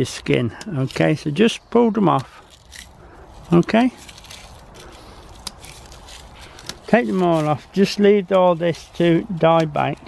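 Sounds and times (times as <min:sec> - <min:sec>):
flower stems snapping: 0:02.1 - 0:08.4
faint rustling: 0:02.2 - 0:10.0.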